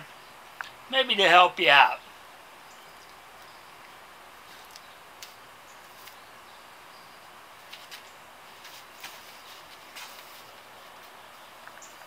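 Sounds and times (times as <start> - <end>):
quiet outdoor hiss: 0.0 - 12.0
rope rustling and clicking: 4.5 - 6.2, 7.6 - 12.0.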